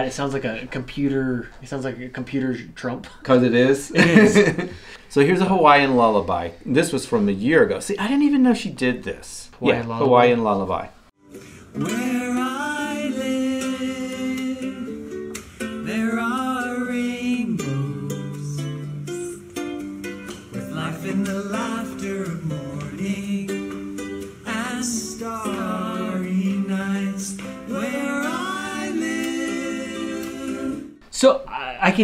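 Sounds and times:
plucked string instrument: 0:11.2 - 0:30.9
man and woman singing lullaby: 0:11.4 - 0:31.0.

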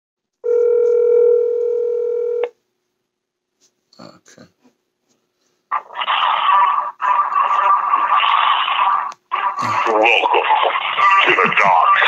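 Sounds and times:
hissing over phone speaker: 0:05.8 - 0:12.0.

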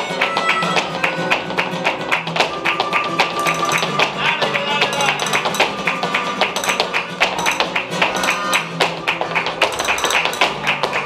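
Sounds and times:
dancer's footwork on wooden stage: 0:00.0 - 0:11.0
flamenco guitar playing: 0:00.0 - 0:11.0
hand claps: 0:00.0 - 0:11.0.

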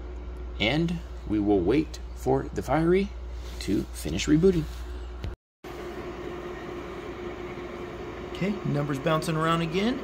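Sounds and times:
constant hum tone: 0:00.0 - 0:10.0
cooling fan whirring: 0:00.0 - 0:10.0.

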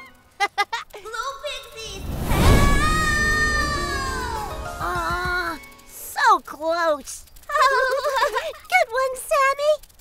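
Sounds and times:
background music: 0:02.2 - 0:06.1.

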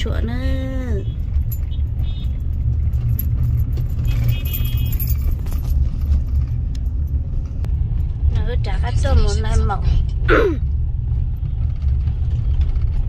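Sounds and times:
car road rumble: 0:00.0 - 0:13.0
jingling clicks: 0:01.2 - 0:07.6.

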